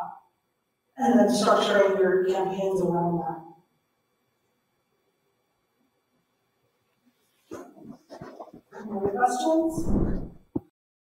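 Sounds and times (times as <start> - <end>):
person's voice: 1.0 - 3.3, 7.5 - 10.7.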